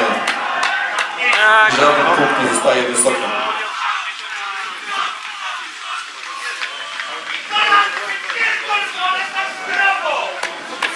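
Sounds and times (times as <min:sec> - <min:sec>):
men shouting and chattering: 0:00.0 - 0:10.9.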